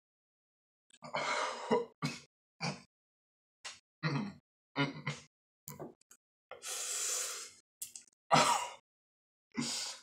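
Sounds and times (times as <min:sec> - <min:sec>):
person breathing hard hissing: 0:06.6 - 0:07.6.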